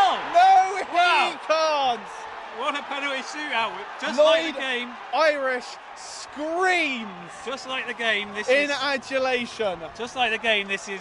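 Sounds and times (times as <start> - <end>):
man commentating excitedly: 0.0 - 11.0.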